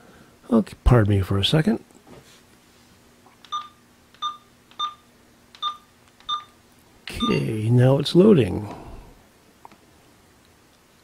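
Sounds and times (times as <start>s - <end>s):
keypad beeping: 3.4s - 7.4s.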